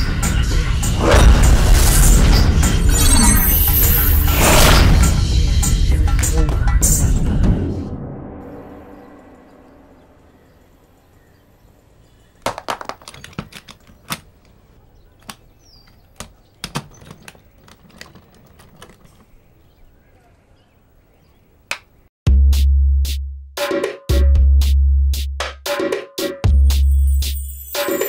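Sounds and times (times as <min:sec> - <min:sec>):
reverberant music hit: 0:07.2 - 0:10.8
sharp clicks and knocks: 0:12.4 - 0:14.6, 0:15.2 - 0:19.3.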